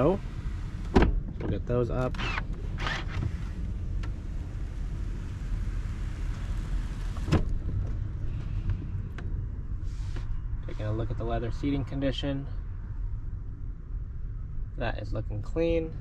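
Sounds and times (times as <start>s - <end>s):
seat clunk: 0.8s - 4.2s, 7.0s - 8.0s.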